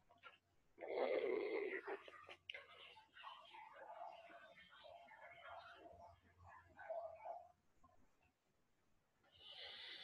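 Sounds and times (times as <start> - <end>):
faint whispering voice: 0.9 - 7.6.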